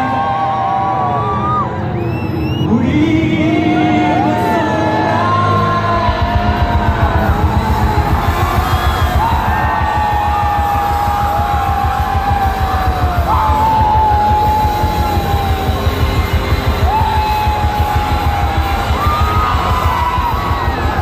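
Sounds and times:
live band through a pa: 0.0 - 21.0
sliding lead melody: 4.8 - 21.0
fast drum beats: 6.0 - 21.0.

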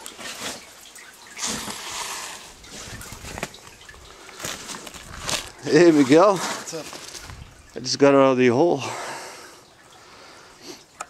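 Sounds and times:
person breathing: 8.8 - 10.9.

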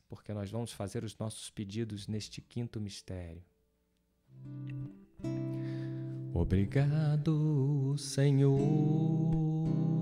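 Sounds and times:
acoustic guitar strummed: 4.4 - 10.0.

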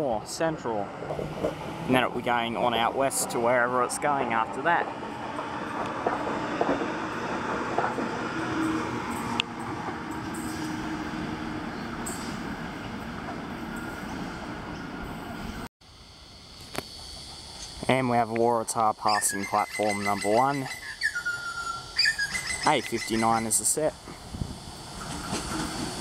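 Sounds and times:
train wheels rumbling on rail: 0.0 - 15.7, 21.5 - 26.0.

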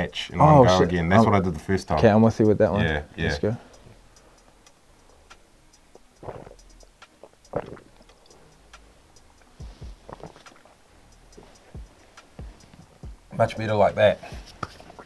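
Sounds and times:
faint ticks: 3.6 - 13.3
person gulping and breathing: 6.2 - 6.6, 7.2 - 8.0, 10.1 - 10.7
soft low knocks: 9.6 - 10.4, 11.2 - 13.4.

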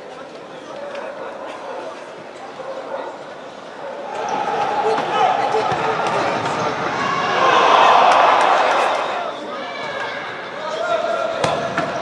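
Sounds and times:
voices shouting and calling: 3.7 - 12.0.

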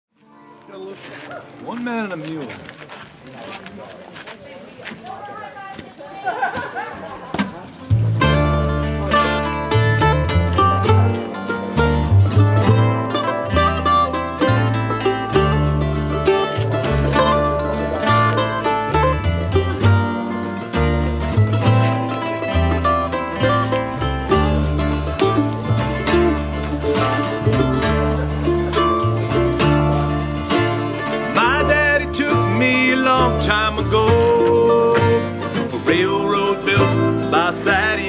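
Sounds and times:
walking bass line: 0.1 - 38.0
bluegrass band playing: 0.2 - 38.0.

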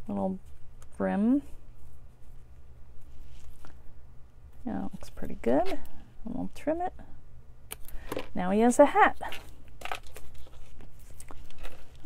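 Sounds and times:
paper rustling: 9.3 - 12.0.

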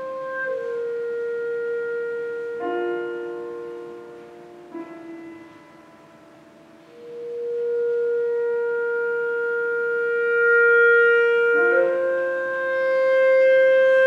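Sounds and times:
piano note ringing: 0.0 - 10.1
clarinet holding long note: 0.0 - 14.0.

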